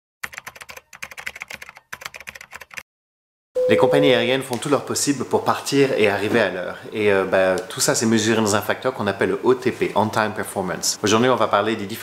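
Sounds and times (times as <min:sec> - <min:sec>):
rapid keyboard typing: 0:00.2 - 0:02.8.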